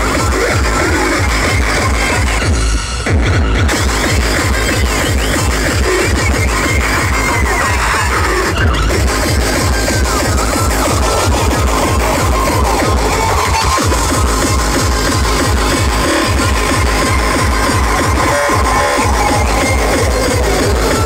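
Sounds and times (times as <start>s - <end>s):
distorted kick drum: 0.0s - 21.0s
squealing synth lines: 3.9s - 21.0s.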